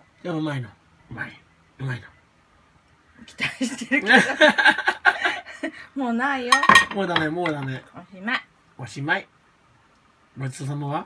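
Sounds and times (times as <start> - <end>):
utensils clinking against dish: 6.5 - 7.7.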